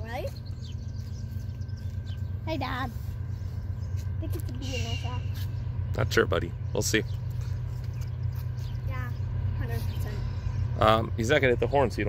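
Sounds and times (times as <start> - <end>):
freight train rumble: 0.0 - 12.0.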